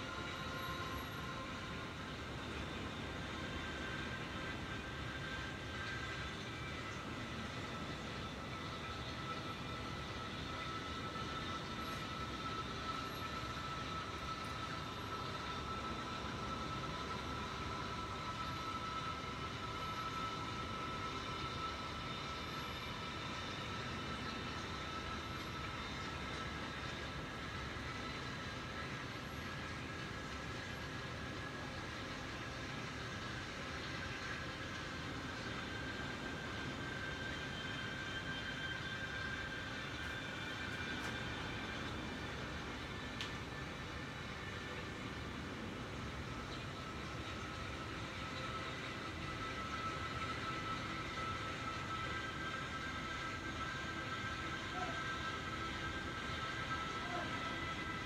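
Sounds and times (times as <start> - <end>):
mechanical hum with hiss: 0.0 - 58.0.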